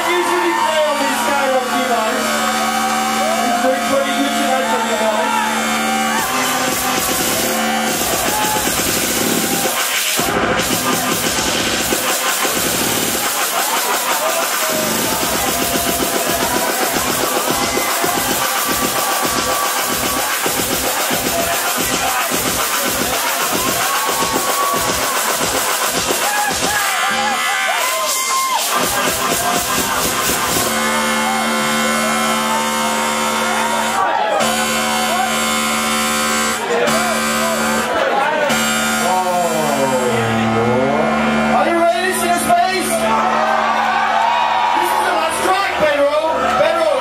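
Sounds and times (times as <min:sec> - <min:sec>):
electronic dance music: 0:00.0 - 0:47.0.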